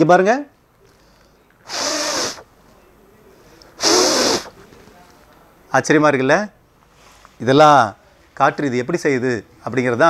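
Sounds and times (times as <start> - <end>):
strong puffs of breath: 0.9 - 2.5, 3.4 - 4.6.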